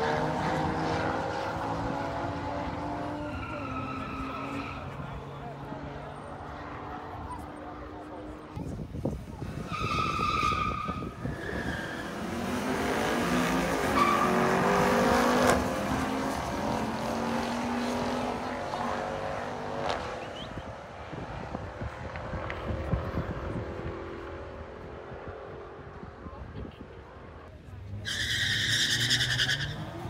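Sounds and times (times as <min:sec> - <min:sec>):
racing car engines revving: 0:00.0 - 0:30.0
high tire squeal: 0:03.1 - 0:05.1, 0:09.5 - 0:12.3, 0:13.9 - 0:14.6, 0:28.0 - 0:30.0.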